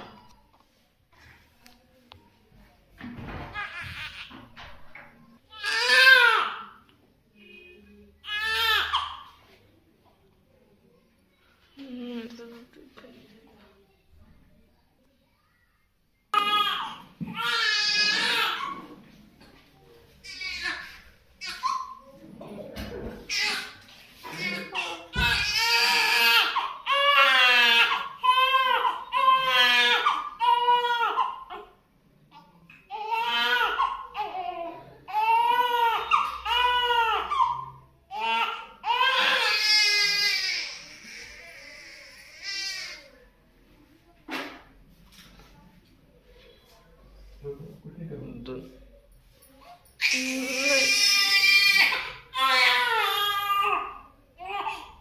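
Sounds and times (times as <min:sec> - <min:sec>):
newborn baby crying: 0:08.2 - 0:09.4, 0:16.3 - 0:18.8, 0:23.3 - 0:31.8, 0:32.9 - 0:43.1, 0:50.0 - 0:55.0.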